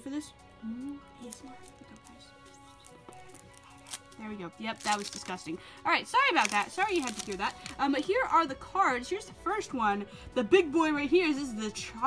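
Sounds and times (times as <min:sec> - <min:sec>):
quiet background music: 0:00.0 - 0:12.0
person humming: 0:00.6 - 0:01.0
plastic wrap crinkling: 0:01.2 - 0:05.6, 0:06.2 - 0:08.1.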